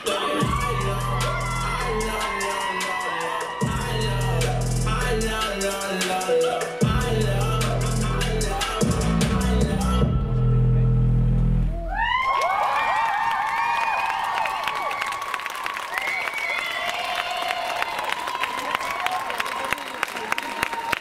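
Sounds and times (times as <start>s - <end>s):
audience cheering and applause: 0.0s - 6.2s, 11.8s - 21.0s
dance music heavy bass: 0.0s - 11.8s.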